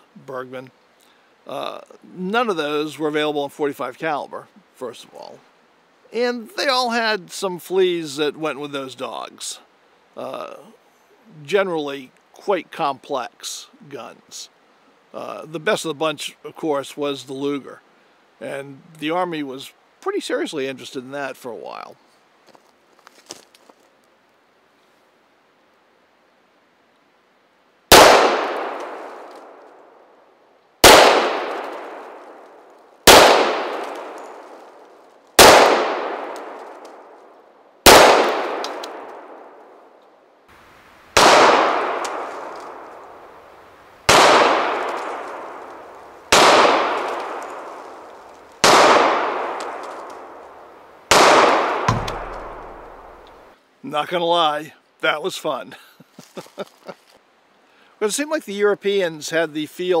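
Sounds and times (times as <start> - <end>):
pistol shots echoing: 27.9 - 29.6, 30.8 - 32.4, 33.1 - 34.5, 35.4 - 36.8, 37.9 - 39.6, 41.2 - 43.0, 44.1 - 47.8, 48.6 - 50.4, 51.1 - 53.2.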